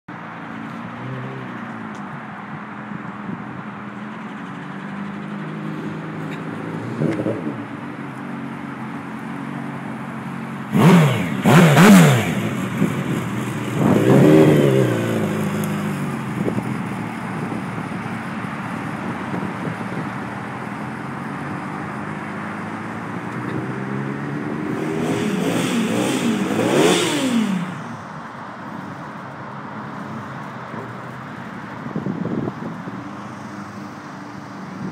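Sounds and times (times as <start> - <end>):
motorcycle engine revving: 10.7 - 16.7, 21.5 - 28.0.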